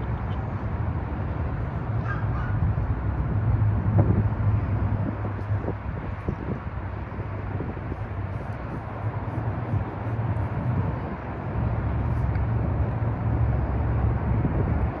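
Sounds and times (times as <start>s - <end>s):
road traffic rumble: 0.0s - 15.0s.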